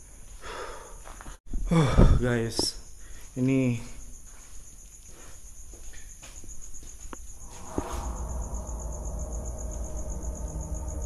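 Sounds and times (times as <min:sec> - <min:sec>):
insects chirring: 0:00.0 - 0:11.0
low droning ambient music: 0:07.4 - 0:11.0.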